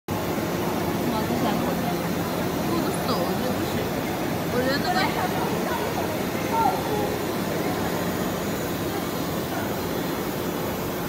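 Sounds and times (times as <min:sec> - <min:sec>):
distant indistinct voices: 0:00.1 - 0:11.0
steady background noise: 0:00.1 - 0:11.0.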